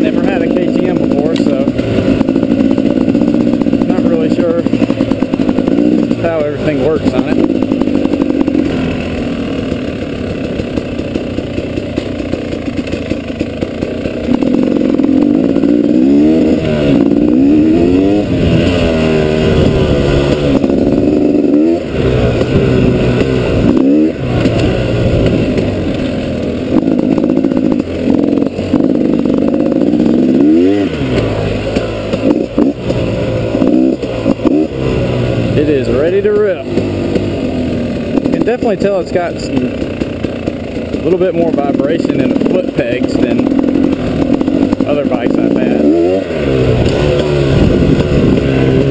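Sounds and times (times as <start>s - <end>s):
dirt bike engine revving: 0.0s - 48.9s.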